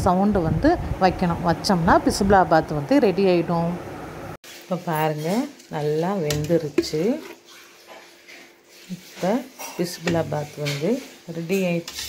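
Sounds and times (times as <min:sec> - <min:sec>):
woman speaking: 0:00.0 - 0:03.8, 0:04.7 - 0:07.3, 0:08.9 - 0:11.9.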